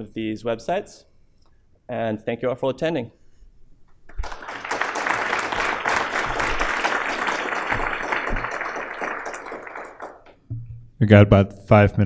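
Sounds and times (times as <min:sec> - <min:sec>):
audience applauding: 0:04.1 - 0:10.5.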